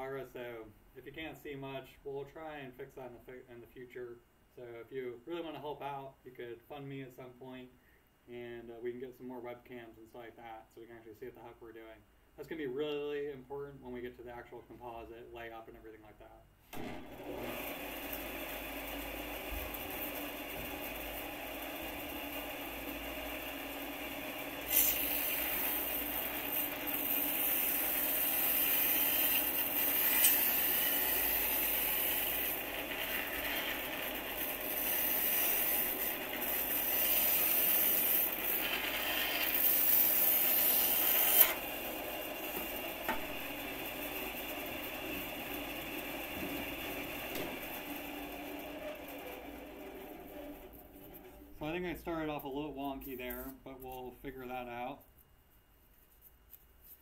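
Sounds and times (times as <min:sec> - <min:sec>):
bandsaw running: 0:16.8 - 0:51.8
saw blade hissing through foam: 0:24.6 - 0:25.7.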